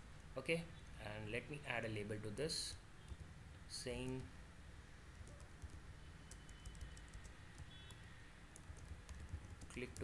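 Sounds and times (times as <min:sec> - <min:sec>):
typing on computer keyboard: 0:05.1 - 0:10.0.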